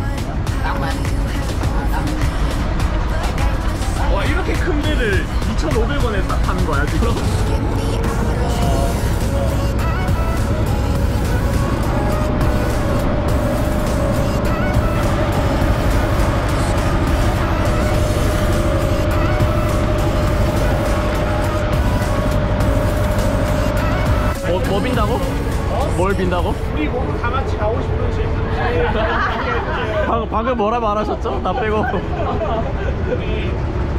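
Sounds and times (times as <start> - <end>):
boat engine droning: 0.0 - 33.9.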